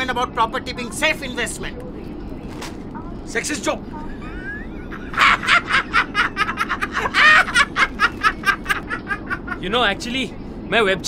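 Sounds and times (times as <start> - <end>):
steady low hum: 0.0 - 11.0
person laughing: 4.0 - 9.7.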